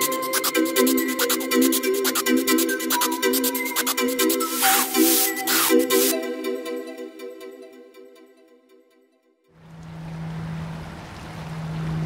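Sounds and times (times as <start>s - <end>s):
water noise: 9.6s - 12.0s.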